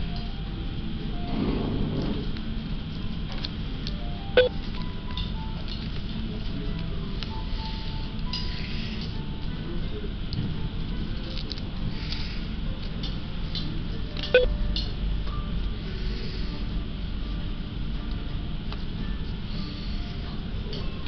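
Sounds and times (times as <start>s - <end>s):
faint music: 0.0s - 21.0s
steady low hum: 0.0s - 21.0s.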